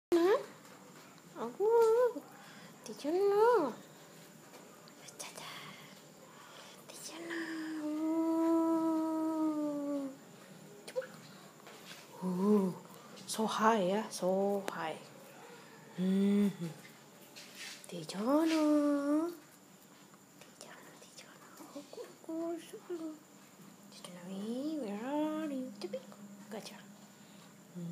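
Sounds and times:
person humming: 7.4s - 10.2s, 16.0s - 16.8s, 21.8s - 23.2s
person whispering faintly: 20.4s - 23.2s.

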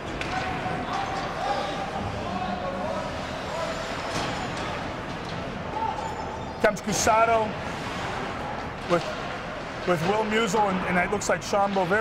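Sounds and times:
murmur of spectators chatter: 0.0s - 12.0s
hockey stick and puck clacks: 0.1s - 1.3s.

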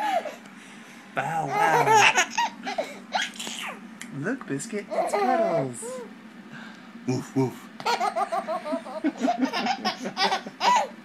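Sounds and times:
man laughing: 1.4s - 2.3s, 7.1s - 10.9s
baby laughing: 1.4s - 3.8s, 7.8s - 11.0s.

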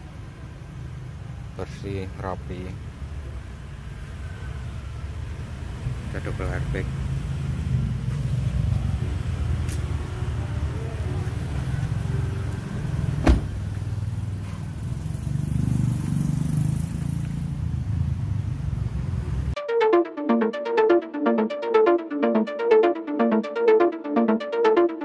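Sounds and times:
car door latch click: 13.2s - 13.5s.

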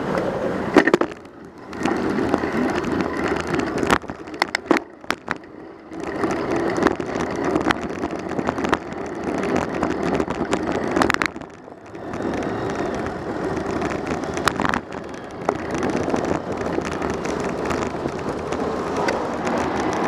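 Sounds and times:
tyres on road: 0.0s - 20.0s
knocks and rattles from bumps: 0.7s - 20.0s.

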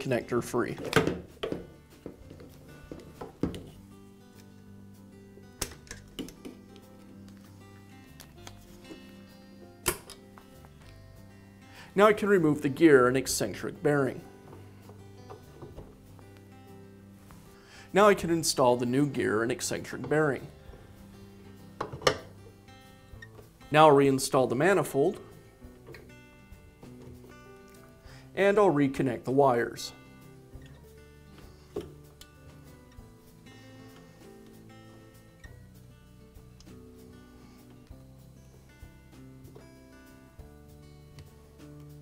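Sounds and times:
quiet background music: 0.0s - 42.0s.

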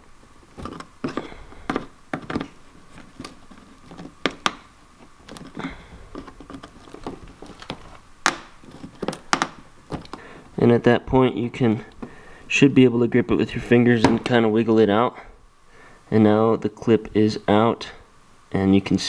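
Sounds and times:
screwdriver scraping plastic clip: 5.2s - 8.0s.

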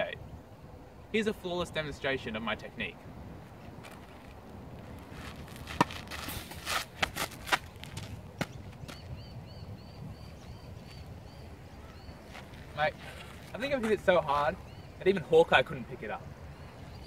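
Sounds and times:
racket swish: 5.1s - 7.6s.

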